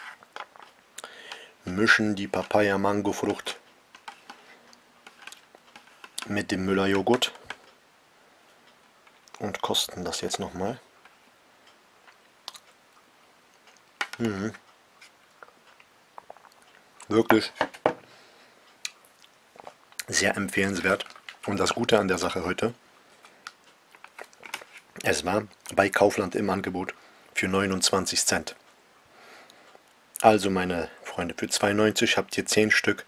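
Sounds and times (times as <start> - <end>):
person eating mouth sounds: 13.7 - 14.6.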